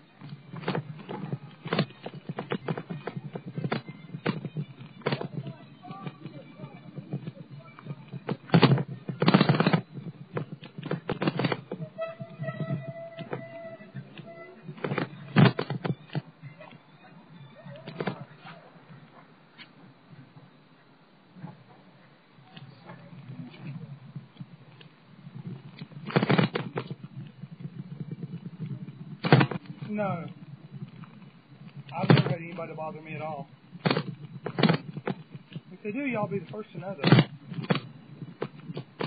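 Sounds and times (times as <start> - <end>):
rough bumps: 0.0 - 39.0
camera knocks and rattles: 0.2 - 16.7, 17.8 - 18.3, 23.1 - 39.0.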